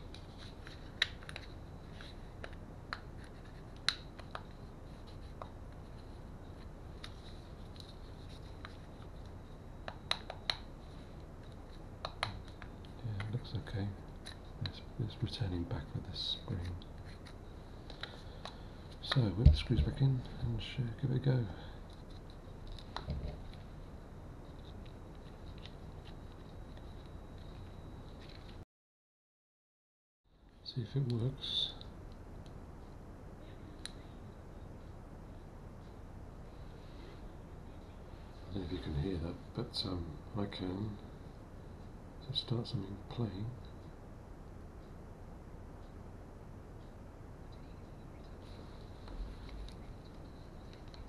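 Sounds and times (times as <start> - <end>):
faint room hum: 0.0 - 28.6, 30.3 - 51.0.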